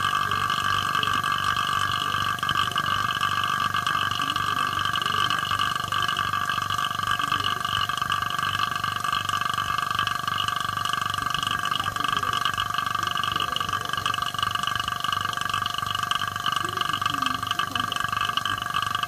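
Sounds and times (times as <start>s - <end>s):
vacuum pump humming: 0.0s - 19.0s.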